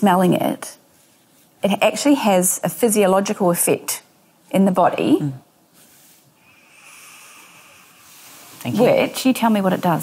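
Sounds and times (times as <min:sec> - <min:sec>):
person sniffing through nose: 0:06.5 - 0:08.6.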